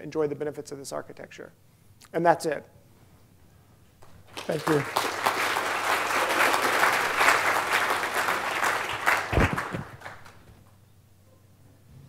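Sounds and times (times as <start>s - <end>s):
audience applauding: 4.2s - 10.6s.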